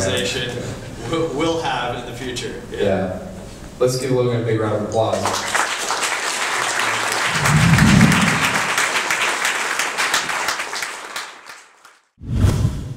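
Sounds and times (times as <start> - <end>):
audience applause: 5.2 - 12.0.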